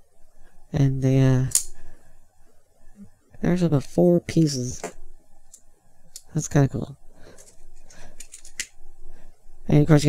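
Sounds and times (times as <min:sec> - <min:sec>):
plastic parts clicking and clacking: 0:08.2 - 0:08.7.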